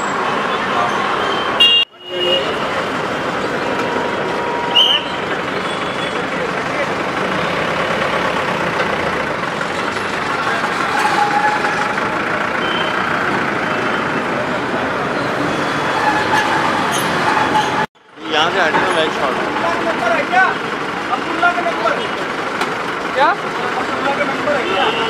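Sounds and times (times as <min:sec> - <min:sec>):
street noise: 0:00.0 - 0:25.0.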